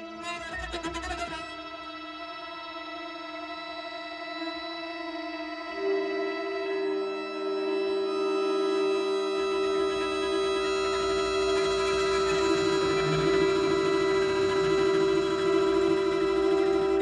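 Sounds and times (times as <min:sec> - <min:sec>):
drone-like chamber music: 0:00.0 - 0:17.0.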